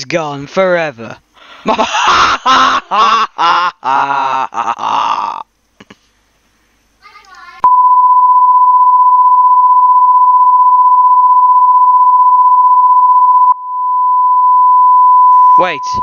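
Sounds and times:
pure steady beep tone: 7.6 - 16.0.

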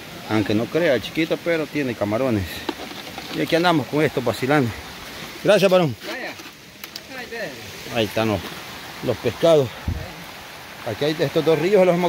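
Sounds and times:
river running over rocks: 0.0 - 12.0.

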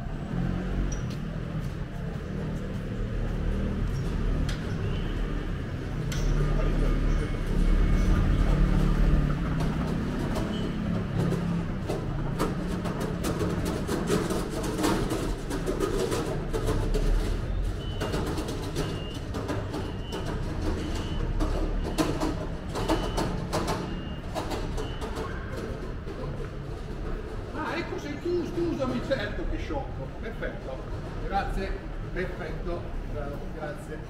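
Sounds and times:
distant traffic rumble: 0.0 - 34.0.

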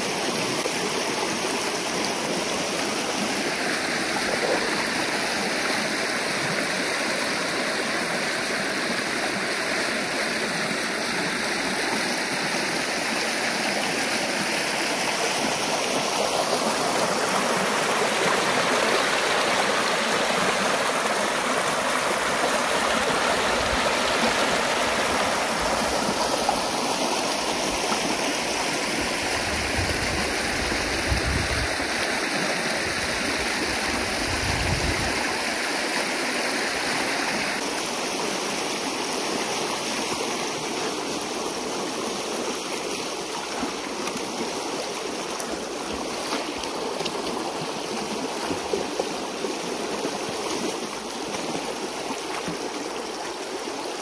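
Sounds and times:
water rushing through dam breach: 0.0 - 54.0.

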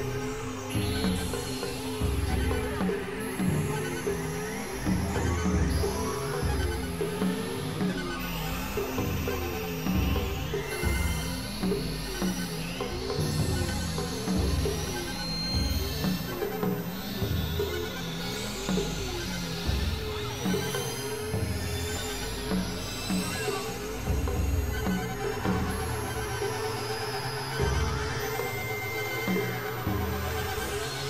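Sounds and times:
experimental electronic music: 0.0 - 31.0.

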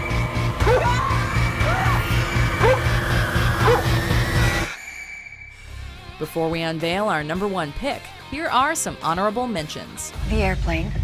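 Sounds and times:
fast pulsing low throb: 0.0 - 4.7
dark horror music: 0.0 - 6.4.

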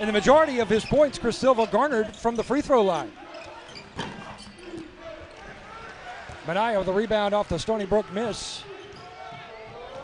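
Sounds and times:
murmur of arena crowd: 0.0 - 10.0.

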